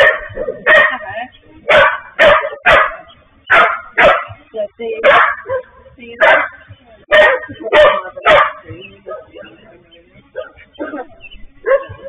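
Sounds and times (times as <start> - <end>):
dog barking: 0.0 - 4.4, 5.0 - 9.6, 10.3 - 12.0.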